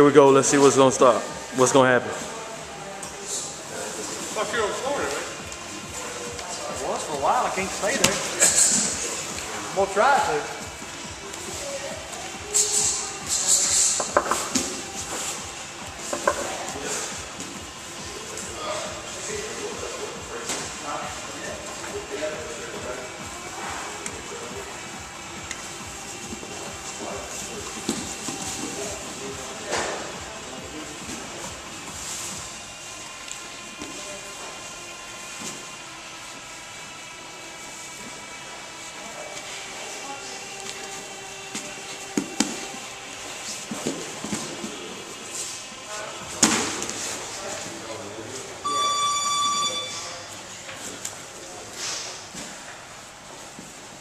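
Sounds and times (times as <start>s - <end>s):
indistinct voices: 0.0s - 31.7s
faint background music: 0.0s - 54.0s
electronic tone: 48.6s - 50.3s.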